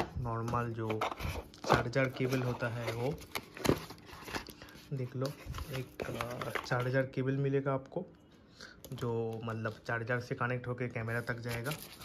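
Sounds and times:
cardboard rustling: 0:00.0 - 0:07.0, 0:11.1 - 0:12.0.

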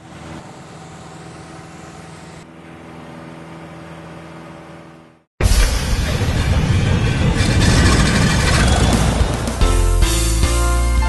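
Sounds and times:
loud dense rushing noise: 0:05.4 - 0:09.7
music with held notes: 0:09.6 - 0:11.0.

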